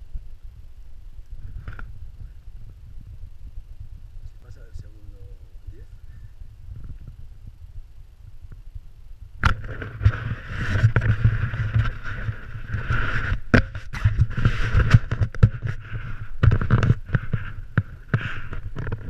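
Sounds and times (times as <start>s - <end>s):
wind on microphone: 0.0s - 19.0s
snowboard scraping over snow: 9.6s - 19.0s.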